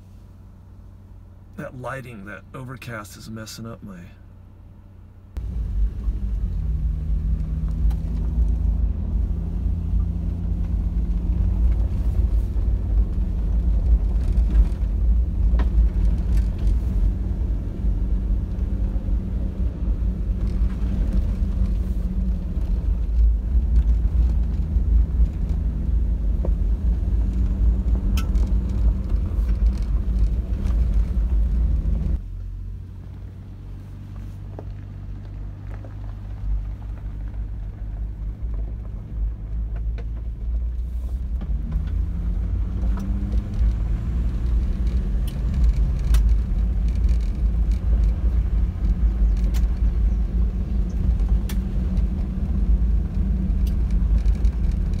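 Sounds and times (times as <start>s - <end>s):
vehicle engine and tyres on gravel: 0.0s - 55.0s.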